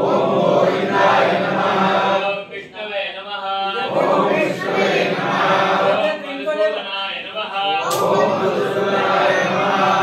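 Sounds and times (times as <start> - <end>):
group chanting in unison: 0.0 - 2.5, 3.6 - 6.3, 7.2 - 10.0.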